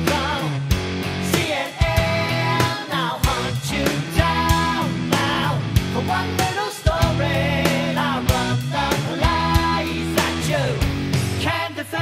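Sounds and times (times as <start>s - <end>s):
pitch-bending guitar melody: 0.0s - 11.4s
hard rock song: 0.0s - 12.0s.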